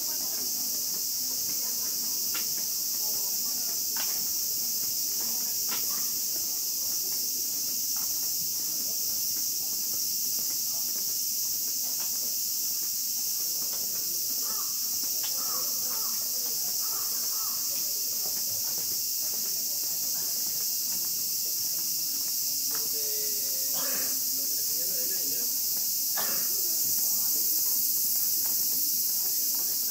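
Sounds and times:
cicadas droning: 0.0 - 29.9.

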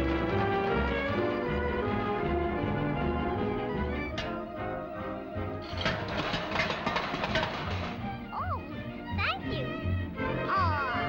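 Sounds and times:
orchestral cartoon music: 0.0 - 11.0.

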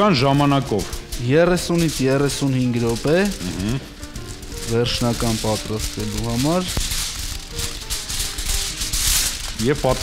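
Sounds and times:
man speaking: 0.0 - 3.9, 4.6 - 6.7, 9.6 - 10.0
hissing rattle: 0.0 - 10.0.

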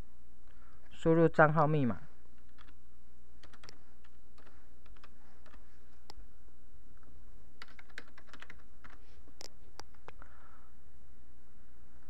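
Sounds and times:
computer keyboard typing: 2.4 - 2.8, 3.4 - 5.6, 7.6 - 10.1.

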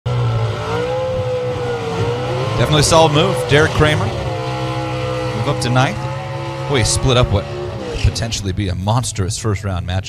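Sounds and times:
drag racing engine idling: 0.1 - 9.4.

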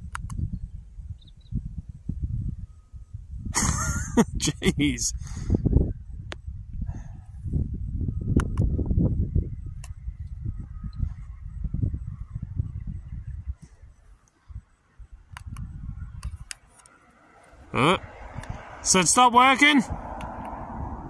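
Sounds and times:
wind buffeting microphone: 0.0 - 16.8, 17.5 - 21.0
faint sharp clicks: 0.1 - 0.4.

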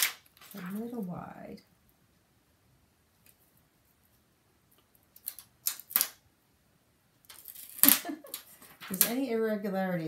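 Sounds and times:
paper rustling: 0.0 - 1.0, 7.3 - 9.3.

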